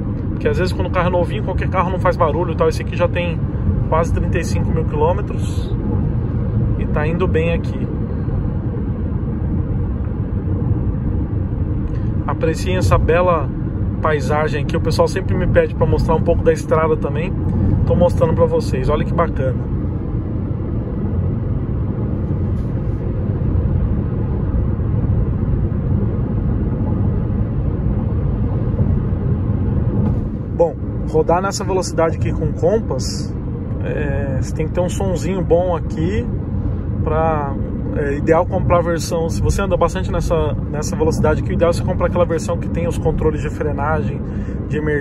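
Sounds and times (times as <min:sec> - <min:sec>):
tyres rumbling on rough asphalt: 0:00.0 - 0:44.9.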